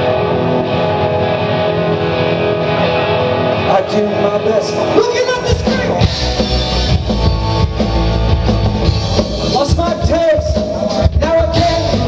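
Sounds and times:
electric bass: 0.0s - 12.0s
electric guitars: 0.0s - 12.0s
drum kit: 4.8s - 12.0s.

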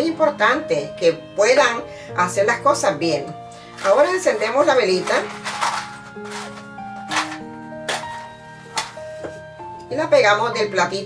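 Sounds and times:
soft background music: 0.0s - 11.0s
match being struck: 5.1s - 9.2s.

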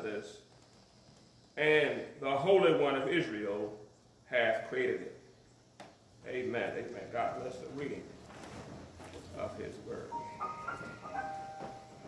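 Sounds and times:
keyboard organ-like held notes: 9.5s - 12.0s.

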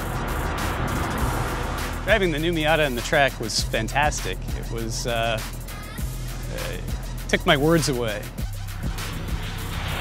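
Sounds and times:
car driving close by: 0.0s - 3.4s
background music: 0.0s - 10.0s.

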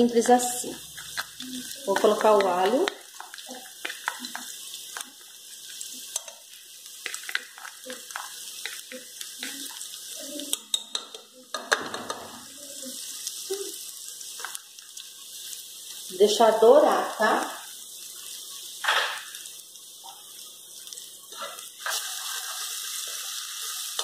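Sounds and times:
garlic sizzling in fat: 0.0s - 24.0s
knife tapping and scraping: 10.5s - 12.3s.

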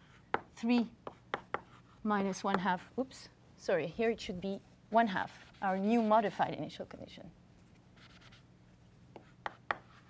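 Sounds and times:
chalk tapping on board: 0.3s - 1.8s, 9.1s - 10.0s
chalk scratching: 5.1s - 6.6s, 8.0s - 8.4s.

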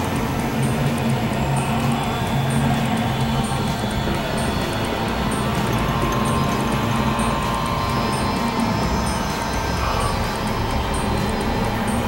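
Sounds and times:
noisy synthesizer drone: 0.0s - 12.0s.

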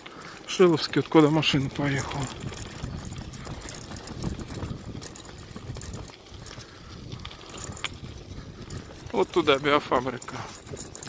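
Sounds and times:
bicycle tyres crunching on dirt: 0.0s - 11.0s
bike ticking and rattling: 0.0s - 11.0s
wind rumble on microphone: 1.3s - 11.0s.

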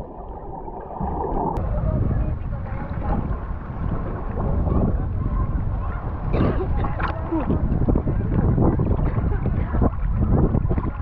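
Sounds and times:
water splash: 0.0s - 1.6s
water sloshing and lapping: 0.0s - 11.0s
wind on microphone: 0.0s - 11.0s.

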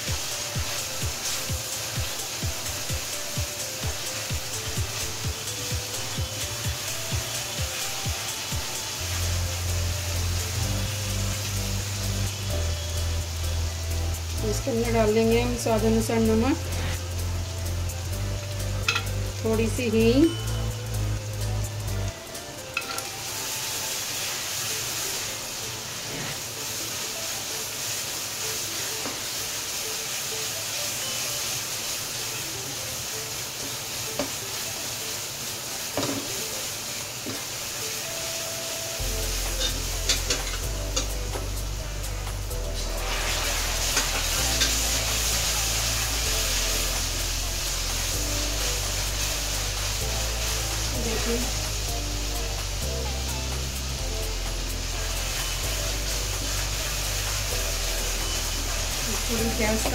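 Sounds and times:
background music with deep bass: 0.0s - 26.5s, 38.5s - 59.9s
sauce sizzling in a pan: 0.0s - 59.9s.

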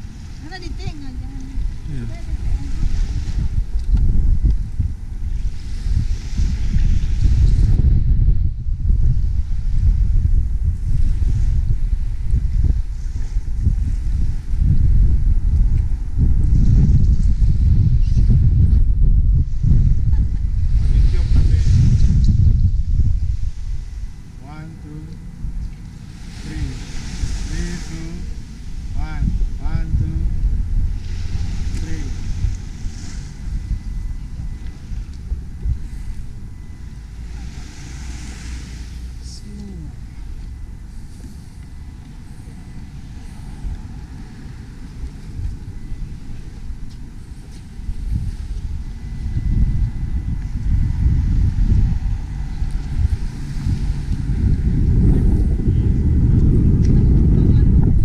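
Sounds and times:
wind buffeting microphone: 0.0s - 58.0s
faint wash of water: 25.7s - 29.6s, 36.5s - 39.2s.

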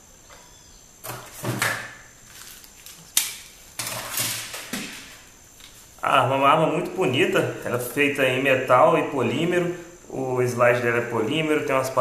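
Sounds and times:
plastic items rustling and knocking: 1.0s - 5.8s.

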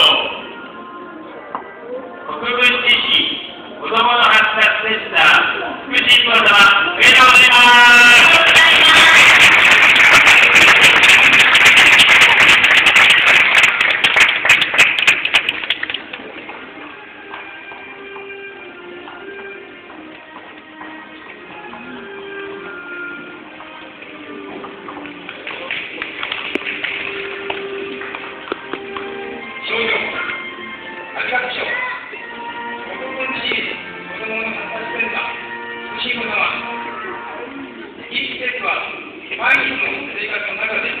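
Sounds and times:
quiet background music: 0.0s - 41.0s
audience applauding: 8.2s - 16.3s, 25.2s - 29.1s.

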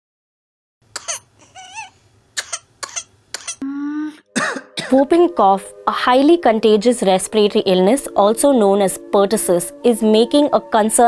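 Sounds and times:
person coughing in sharp bursts: 1.0s - 1.6s, 2.4s - 3.6s, 4.4s - 5.0s
wavering whimper: 1.4s - 2.0s, 3.6s - 4.3s
held pitched vocal sound: 3.6s - 4.6s.

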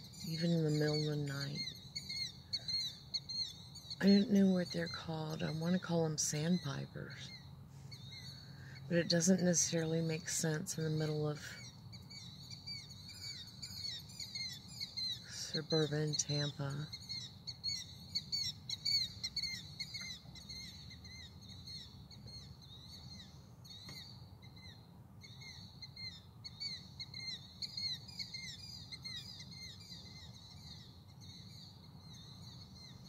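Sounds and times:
low steady hum: 0.0s - 33.0s
night birds chirping: 0.0s - 33.0s.

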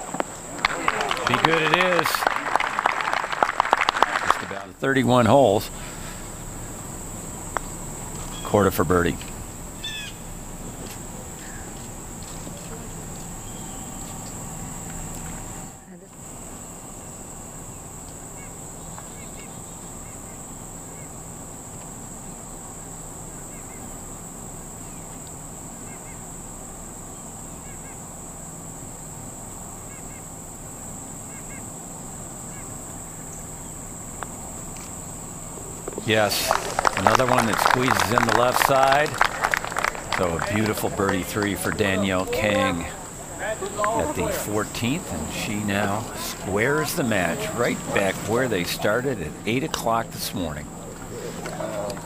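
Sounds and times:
insects droning in trees: 0.0s - 52.0s.

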